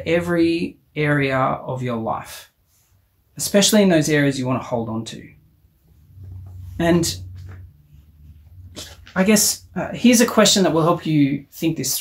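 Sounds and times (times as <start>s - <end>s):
man speaking: 0.0s - 2.5s, 3.4s - 5.4s, 6.7s - 7.5s, 8.8s - 12.0s.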